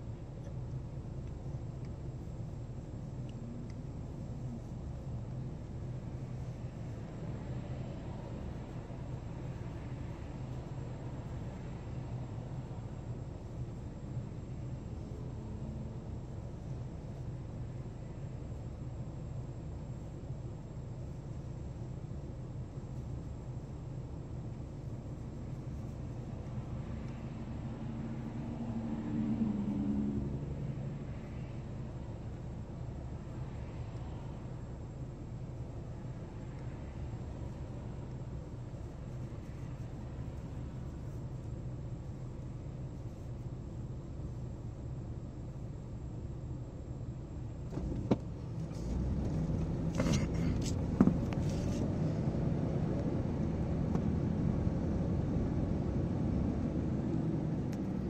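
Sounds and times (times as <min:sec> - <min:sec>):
passing vehicle engine: 0:26.5 - 0:32.1, 0:47.7 - 0:58.0.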